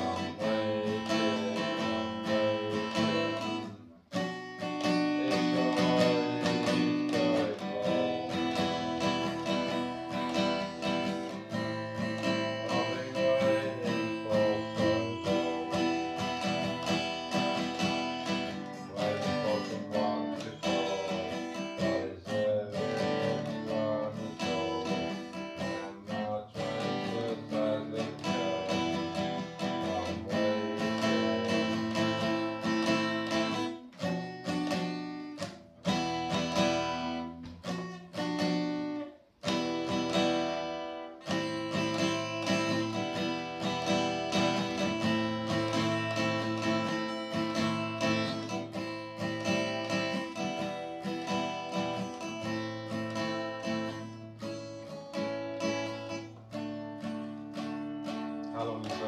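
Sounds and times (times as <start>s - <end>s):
acoustic guitar strummed in chords: 0.0s - 59.0s.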